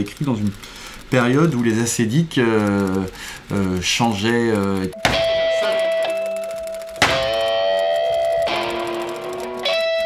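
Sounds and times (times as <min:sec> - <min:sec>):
guitar notes plucked: 0:05.0 - 0:10.0.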